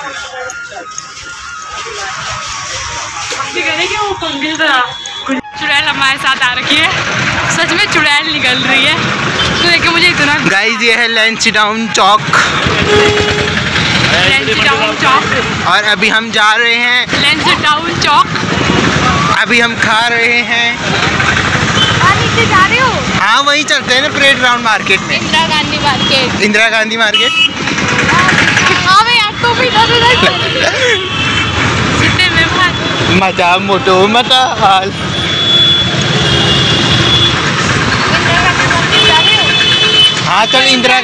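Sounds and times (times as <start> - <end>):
street traffic: 0.0 - 41.0
motorcycle engine running: 5.7 - 11.2, 12.2 - 41.0.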